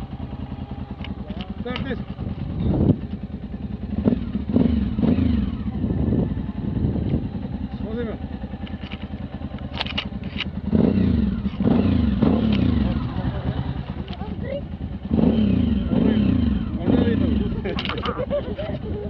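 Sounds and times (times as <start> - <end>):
motorcycle engine idling: 0.0 - 19.0
motorcycle engine revving: 0.0 - 19.0.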